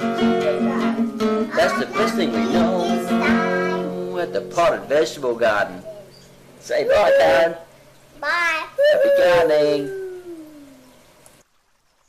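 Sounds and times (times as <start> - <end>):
voice holding falling note: 6.7 - 7.7, 8.8 - 11.0.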